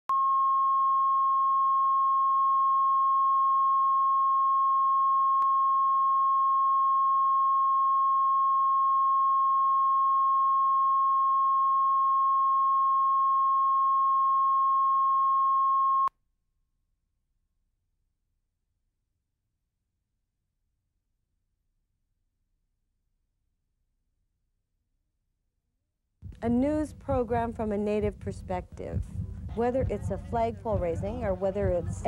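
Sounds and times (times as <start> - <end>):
steady sine test tone: 0.1 - 16.1.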